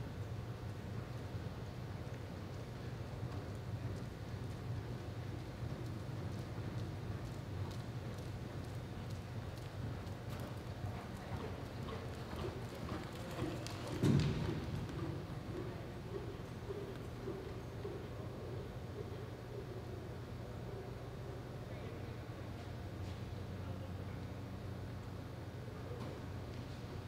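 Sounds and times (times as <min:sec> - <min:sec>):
steady low hum: 0:00.0 - 0:27.0
hoofbeats on soft dirt: 0:00.6 - 0:19.7.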